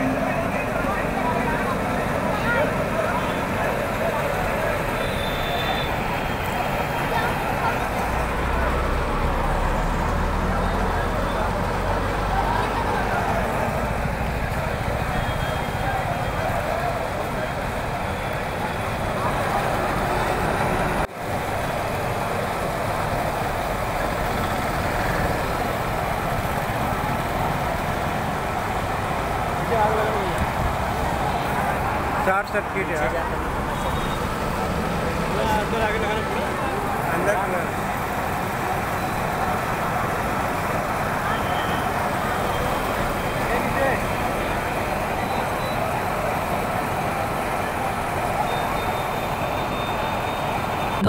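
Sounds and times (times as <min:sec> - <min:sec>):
crowd talking and shouting: 0:00.0 - 0:51.0
street noise: 0:00.0 - 0:51.0.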